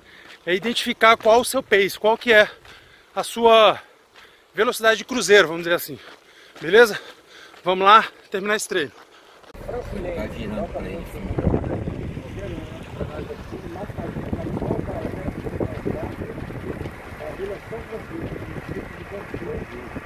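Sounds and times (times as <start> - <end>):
faint voices: 9.6 - 20.0
wind rumbling on microphone: 9.6 - 20.0.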